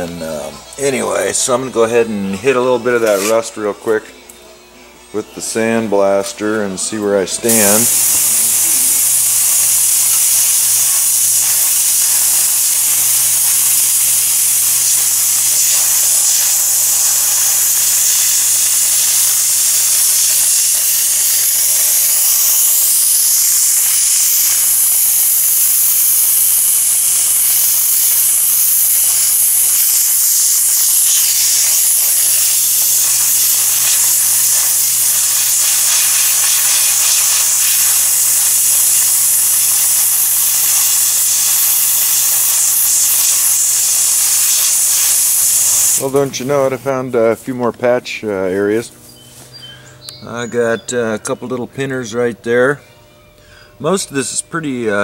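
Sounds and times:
sandblaster hissing: 6.8 - 47.4.

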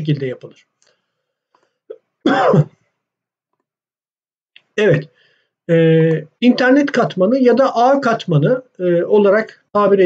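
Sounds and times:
man clearing his throat: 1.9 - 2.8.

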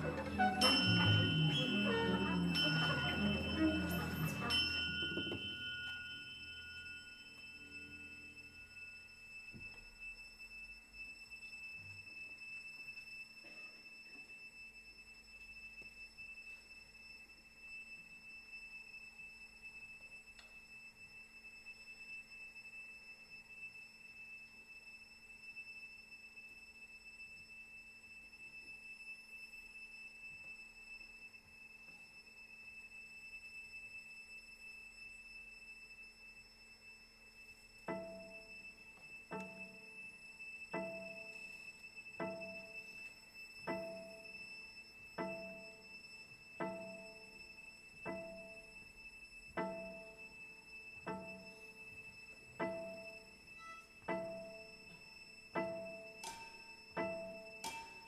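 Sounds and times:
ringing of music: 0.0 - 9.6, 37.3 - 58.0
faint high-pitched tone: 0.0 - 58.0.

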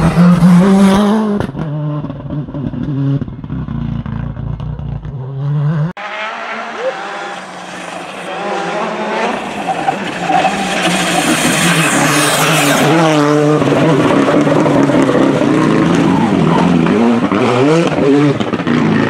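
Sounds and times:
rally car passing at full throttle: 5.4 - 19.0.

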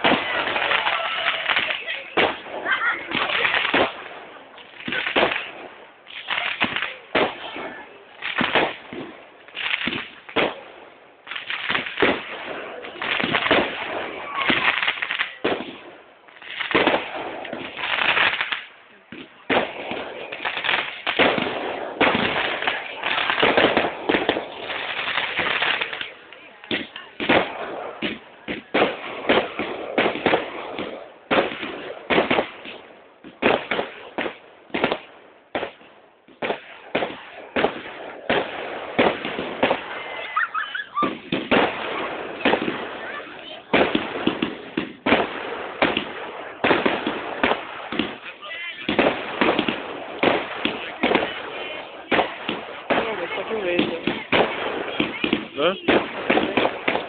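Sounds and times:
fireworks bangs and crackles: 0.0 - 57.0.

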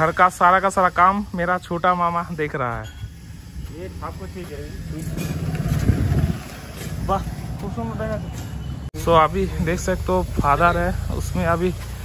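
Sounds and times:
loud low rumbling: 4.6 - 7.7.

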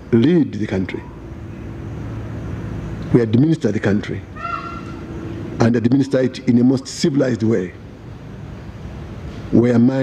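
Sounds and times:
background hiss: 0.0 - 10.0
faint low hum: 0.0 - 10.0
man speaking: 5.6 - 7.8.

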